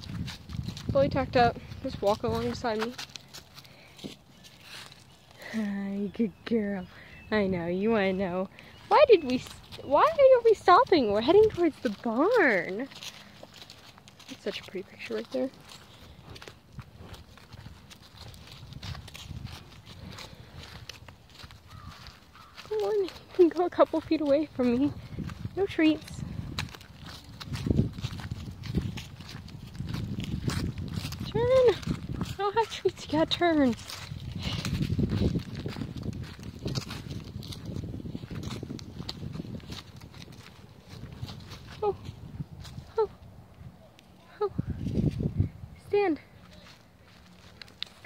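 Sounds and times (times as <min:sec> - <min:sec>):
close rustling: 0:00.0 - 0:48.0
horse hoof steps in dry leaves: 0:00.0 - 0:48.0.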